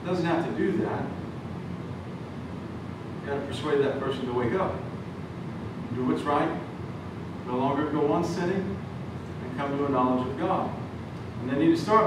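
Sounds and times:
air conditioning hum and hiss: 0.0 - 12.0.

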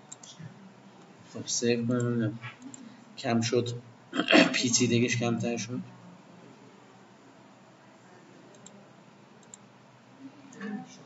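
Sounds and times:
computer mouse clicks: 0.1 - 0.4, 8.5 - 8.8, 9.4 - 9.7
faint murmur of voice: 0.1 - 4.7, 5.8 - 11.0.

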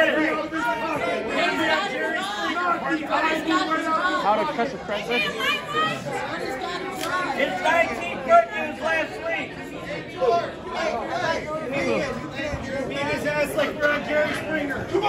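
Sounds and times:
indistinct chatter of people: 0.0 - 15.0.

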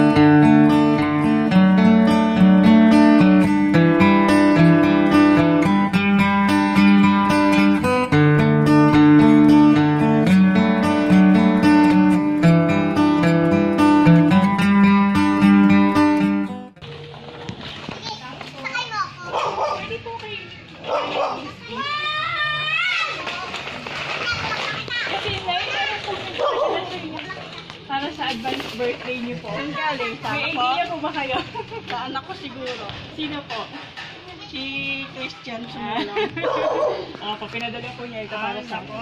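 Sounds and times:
people's voices: 16.9 - 39.0
dog barking: 19.2 - 20.0, 20.8 - 21.6, 26.4 - 27.0, 36.4 - 37.1
women laughing: 31.2 - 32.1, 35.7 - 37.1.

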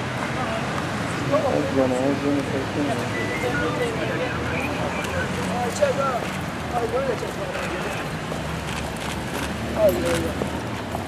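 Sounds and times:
voices of people: 0.1 - 10.6
footsteps on wet paving: 7.0 - 11.0.

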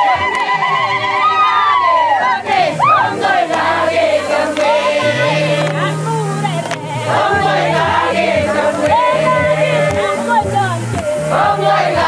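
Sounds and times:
women ululating: 0.0 - 5.5
other voices: 0.0 - 11.8.

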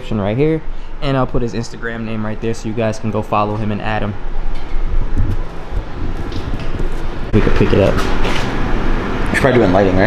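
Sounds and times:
wind on microphone: 4.7 - 7.4.

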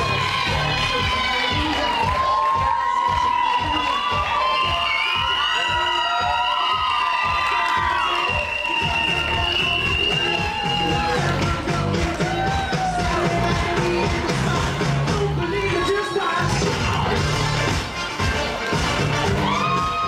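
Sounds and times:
crowd cheering and screaming: 0.0 - 17.8, 18.6 - 20.0
upbeat music with steady beat: 0.0 - 20.0.

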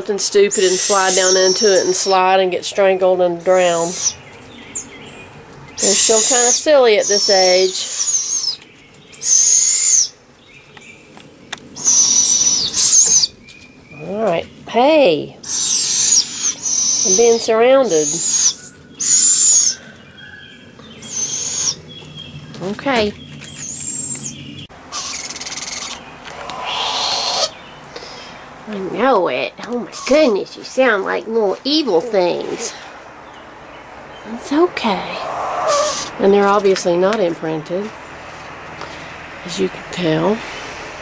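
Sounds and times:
owls hissing: 0.3 - 2.4, 3.4 - 4.9, 5.8 - 8.6, 9.2 - 10.2, 11.7 - 13.4, 15.4 - 21.8, 23.6 - 28.6, 29.8 - 33.1, 35.0 - 36.3
owlets giving raspy begging screeches: 0.5 - 2.2, 3.6 - 4.8, 5.8 - 8.6, 9.2 - 10.1, 11.8 - 13.3, 15.4 - 19.9, 21.0 - 21.8, 24.9 - 28.4, 29.9 - 30.4, 35.2 - 36.2
high thin owl call: 0.5 - 2.3, 3.5 - 4.9, 5.8 - 10.2, 11.7 - 14.1, 15.4 - 21.8, 23.6 - 28.4, 35.1 - 36.2.

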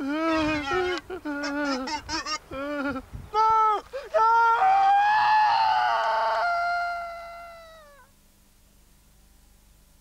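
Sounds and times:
man screaming: 3.4 - 8.1.

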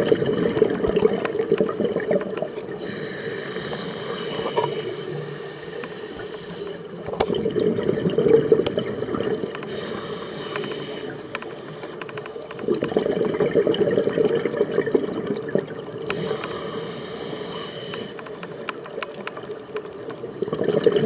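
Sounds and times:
exhaled bubbles underwater: 0.0 - 5.4, 6.8 - 10.1, 12.6 - 16.4, 20.0 - 21.0.

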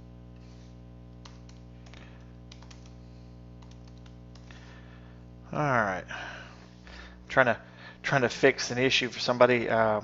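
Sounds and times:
low background hum: 0.0 - 10.0
keyboard keystrokes: 1.2 - 3.0, 3.6 - 4.5.

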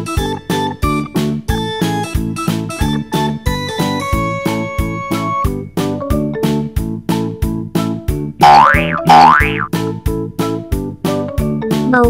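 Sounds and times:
children's music with keyboard beat: 0.0 - 12.0
cartoon sliding pitch tone: 8.4 - 9.7.

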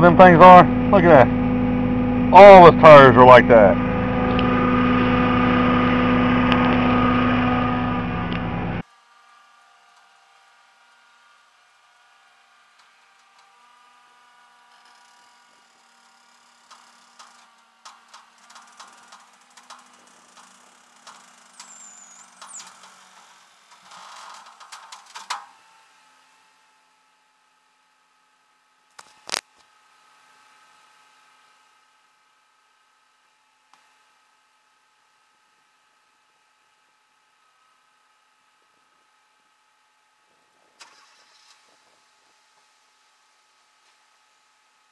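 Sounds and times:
vehicle engine idling: 0.0 - 8.8.

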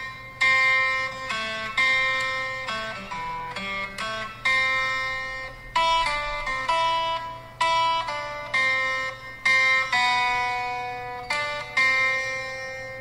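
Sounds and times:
slow plucked melody: 0.0 - 13.0.

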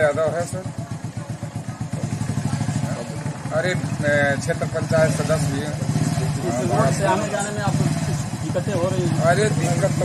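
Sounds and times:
scooter engine idling: 0.0 - 10.0.

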